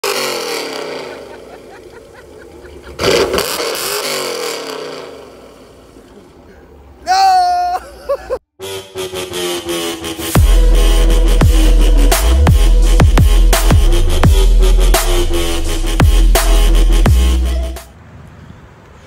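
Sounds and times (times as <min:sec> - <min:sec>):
car engine revving: 0:00.0 - 0:06.1, 0:08.6 - 0:17.9
electronic intro music: 0:08.6 - 0:17.9.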